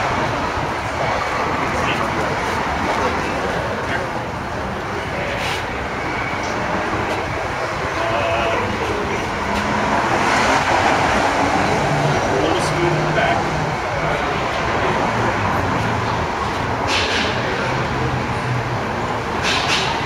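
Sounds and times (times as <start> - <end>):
faint voices: 0.0 - 20.0
steady background noise: 0.0 - 20.0.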